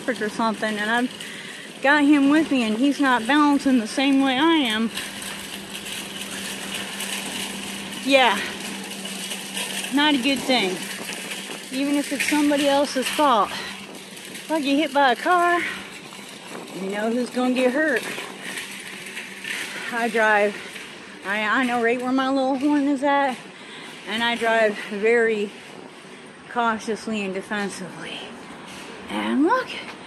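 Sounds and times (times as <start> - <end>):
faint rattles: 0.0 - 30.0
scooter engine humming: 0.0 - 30.0
wind and road noise: 0.0 - 30.0.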